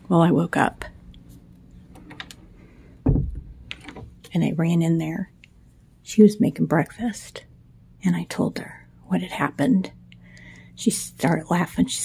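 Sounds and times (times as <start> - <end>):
low thump: 3.0 - 3.5.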